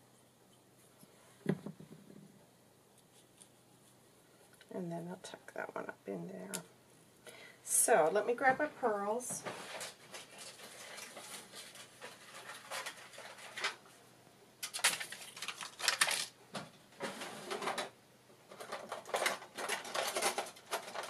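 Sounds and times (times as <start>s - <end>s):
craft supplies rustling and clattering: 9.0s - 14.0s, 14.6s - 21.0s.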